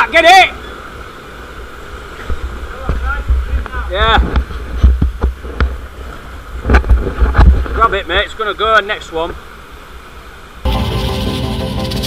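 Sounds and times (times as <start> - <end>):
wind rumbling on microphone: 1.9 - 8.2.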